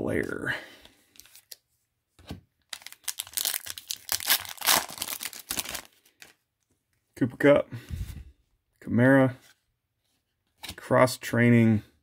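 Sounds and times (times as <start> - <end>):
wrapper tearing and crinkling: 2.7 - 6.4.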